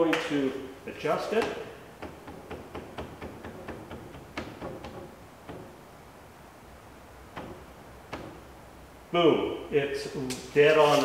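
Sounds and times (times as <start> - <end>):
sharp taps on wood: 1.4 - 5.8, 7.3 - 8.5.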